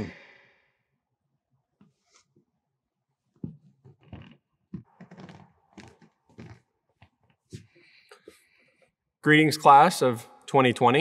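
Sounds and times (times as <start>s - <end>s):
footsteps on hard floor: 3.4s - 7.7s.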